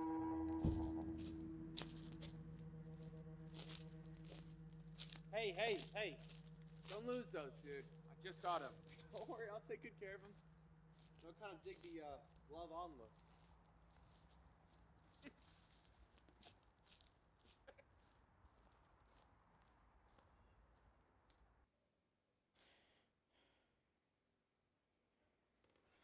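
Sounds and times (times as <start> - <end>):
low hum: 0.0 - 15.2.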